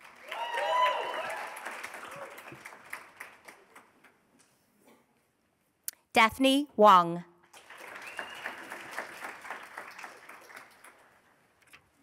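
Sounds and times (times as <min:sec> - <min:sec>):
audience applauding: 0:00.0 - 0:04.2, 0:07.5 - 0:11.6.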